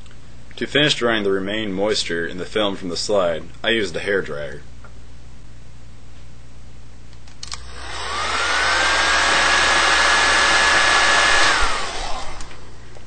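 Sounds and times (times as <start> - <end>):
hair dryer blowing: 7.6 - 12.8.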